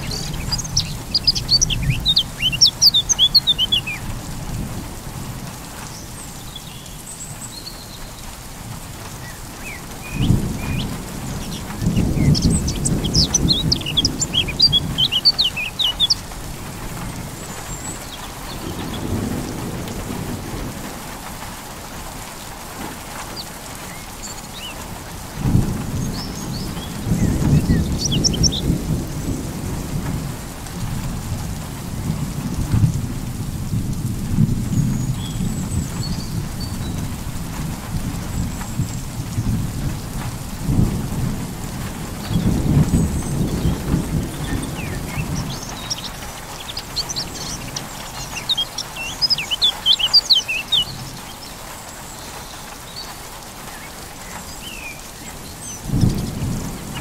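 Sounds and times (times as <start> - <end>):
small birds chirping: 0.0 - 4.4, 5.8 - 8.4, 9.1 - 20.0, 23.1 - 25.1, 25.9 - 29.4, 34.7 - 37.1, 42.2 - 57.0
steady rain: 0.0 - 57.0
thunder rolling: 10.0 - 15.4, 25.4 - 48.4, 55.8 - 57.0.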